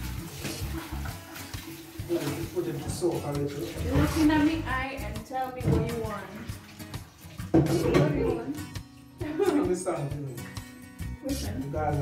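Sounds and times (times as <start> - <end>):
hands washing under water: 0.0 - 8.8
background music: 0.0 - 12.0
tap running into steel sink: 5.6 - 6.2, 6.9 - 8.4.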